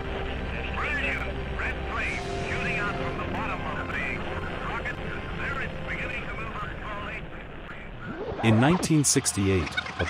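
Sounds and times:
radio voice chatter: 0:00.5 - 0:10.0.

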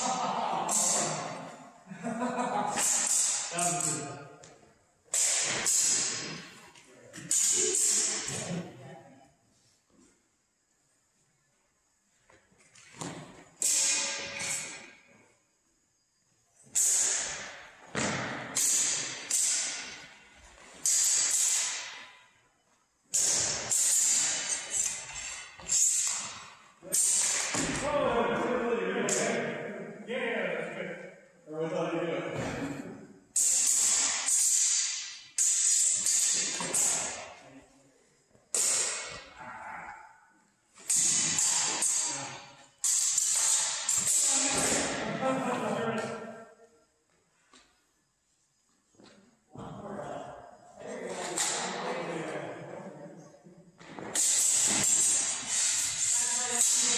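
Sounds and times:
steel swords clashing: 0:02.8 - 0:04.0, 0:05.1 - 0:06.4, 0:07.2 - 0:08.4, 0:13.6 - 0:14.9, 0:16.8 - 0:17.6, 0:18.5 - 0:20.1, 0:20.8 - 0:22.1, 0:23.1 - 0:27.8, 0:33.4 - 0:37.3, 0:38.6 - 0:39.4, 0:40.8 - 0:45.0, 0:54.2 - 0:56.9.

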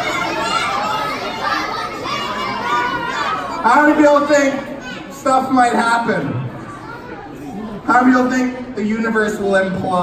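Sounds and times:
children calling out: 0:00.0 - 0:05.7, 0:06.5 - 0:07.8.

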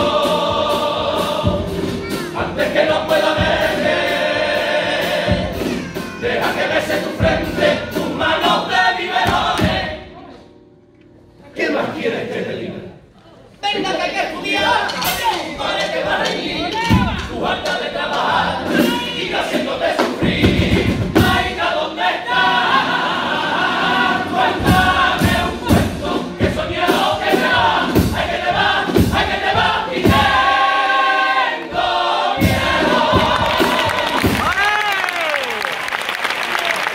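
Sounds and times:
drum strikes: 0:00.0 - 0:10.0, 0:14.6 - 0:21.8, 0:24.4 - 0:30.9, 0:31.7 - 0:34.6
men's choir singing: 0:00.0 - 0:10.1, 0:11.6 - 0:13.0, 0:13.8 - 0:34.5
crowd shouting and cheering: 0:13.8 - 0:17.2, 0:32.8 - 0:36.9.

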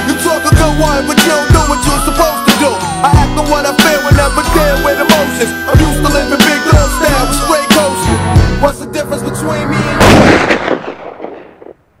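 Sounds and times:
loud blast: 0:09.6 - 0:11.8.

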